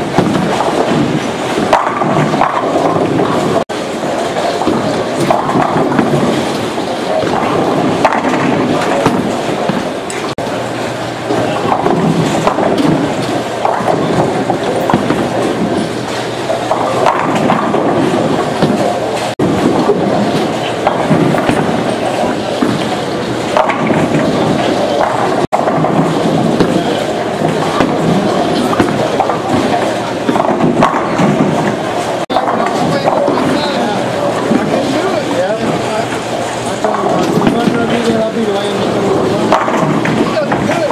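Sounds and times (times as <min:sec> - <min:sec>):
bowling balls rolling: 0:00.0 - 0:40.9
bowling pins clattering: 0:00.0 - 0:40.9
many people talking: 0:18.0 - 0:40.9.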